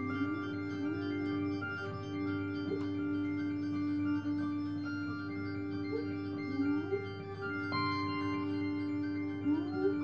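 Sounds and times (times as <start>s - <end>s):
person singing: 0.0s - 5.1s, 6.0s - 10.0s
electric harp: 0.0s - 10.0s.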